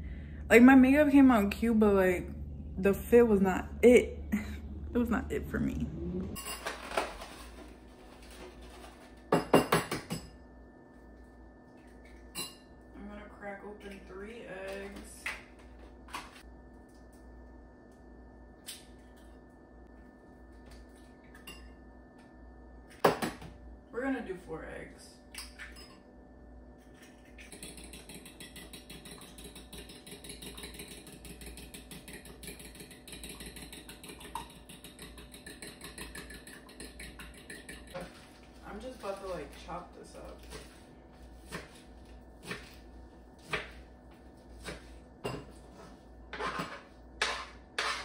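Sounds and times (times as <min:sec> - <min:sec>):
steady low hum: 0:00.0 - 0:48.0
fork beating eggs in a bowl: 0:26.9 - 0:38.3.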